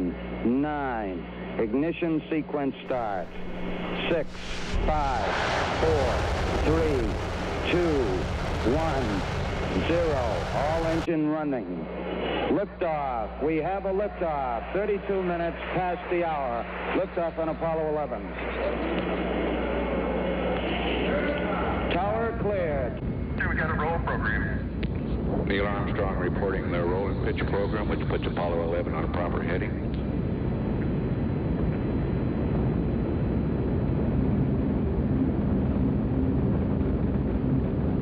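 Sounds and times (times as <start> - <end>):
rocket engines rumbling: 2.8 - 11.1.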